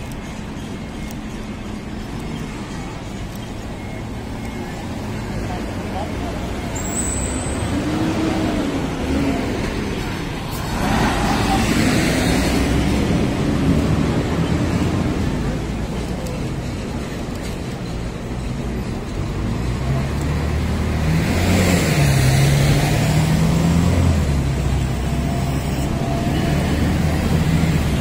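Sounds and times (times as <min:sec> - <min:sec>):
cars driving past: 0:00.0 - 0:28.0.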